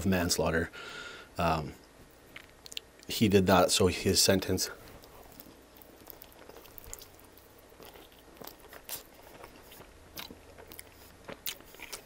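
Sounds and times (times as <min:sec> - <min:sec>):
chewing with soft crunches: 0:01.9 - 0:03.1, 0:04.4 - 0:12.0
wet mouth clicks: 0:02.3 - 0:02.9
biting into pizza: 0:04.8 - 0:12.0.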